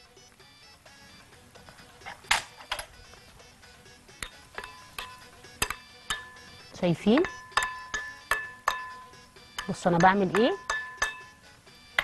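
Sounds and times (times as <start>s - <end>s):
soft background music: 0.0s - 12.0s
fork clinking against glass bowl: 4.2s - 6.5s, 7.2s - 11.4s.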